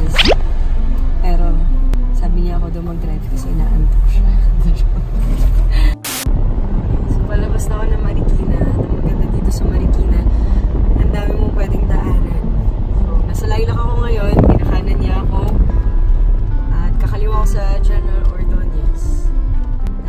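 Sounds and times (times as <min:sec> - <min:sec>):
music: 0:00.0 - 0:20.0.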